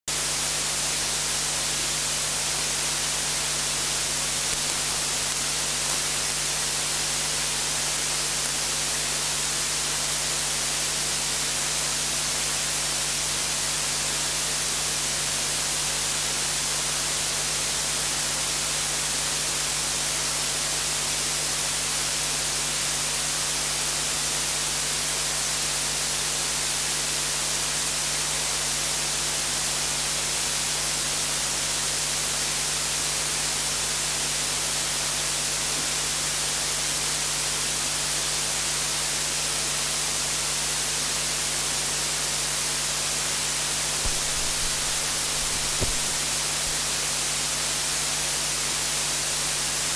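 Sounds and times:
steady hiss: 0.2s - 13.8s, 43.6s - 47.7s.

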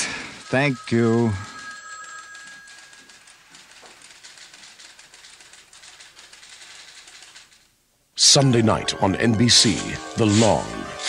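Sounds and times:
fine rapid ticking: 0.0s - 7.7s.

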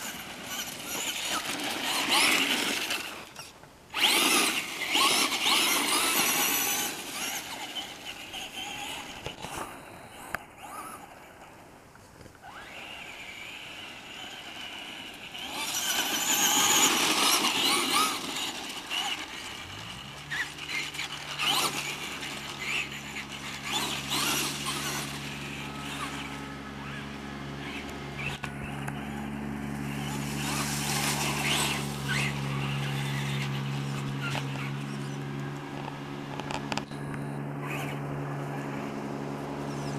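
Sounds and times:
low engine hum: 0.0s - 39.9s
toy truck motor and tyres: 0.0s - 39.9s.

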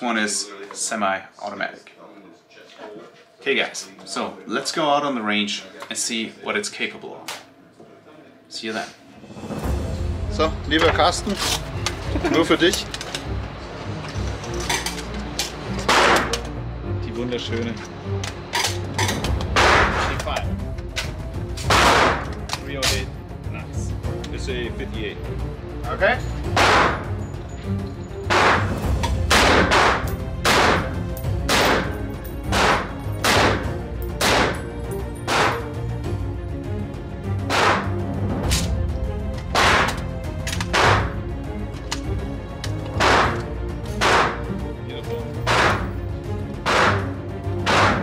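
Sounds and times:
rifle shots echoing indoors: 15.9s - 16.5s, 19.6s - 20.2s, 21.6s - 22.4s, 26.5s - 27.1s, 28.3s - 34.7s, 35.3s - 35.7s, 37.4s - 38.7s, 39.5s - 41.2s, 43.0s - 43.4s, 44.0s - 44.4s, 45.4s - 45.9s, 46.6s - 48.0s.

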